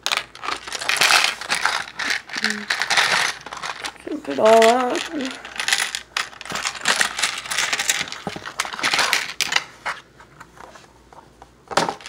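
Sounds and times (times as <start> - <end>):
plastic bricks clattering: 0.0 - 9.7, 11.7 - 12.0.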